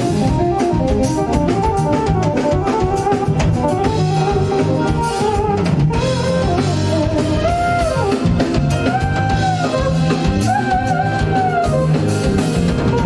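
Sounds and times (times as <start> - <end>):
jazz-funk band playing: 0.0 - 13.0
pitch-bending melody line: 0.0 - 13.0.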